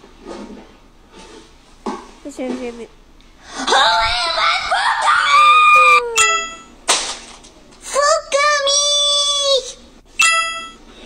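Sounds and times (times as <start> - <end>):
high-pitched voice screaming: 3.7 - 6.2.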